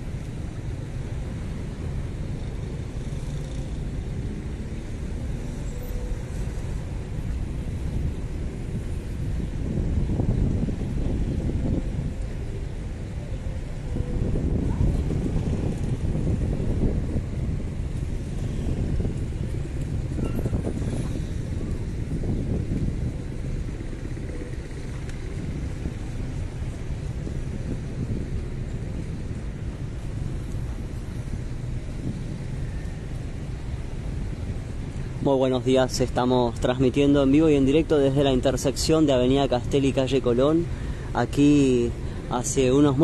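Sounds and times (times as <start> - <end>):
road traffic passing: 0.0 - 43.0
wind rumbling on microphone: 0.0 - 43.0.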